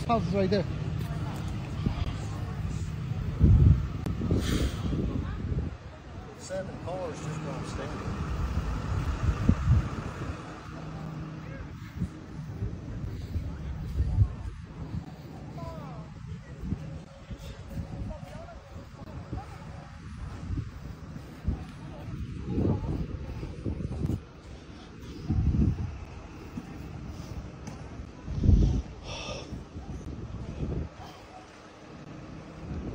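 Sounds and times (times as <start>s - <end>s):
faint voices: 0.0s - 32.9s
wind buffeting microphone: 0.0s - 32.9s.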